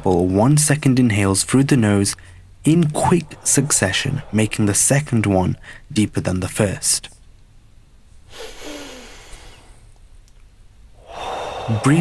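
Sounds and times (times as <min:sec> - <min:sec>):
man inhaling through nose: 0:08.3 - 0:09.9, 0:11.0 - 0:12.0.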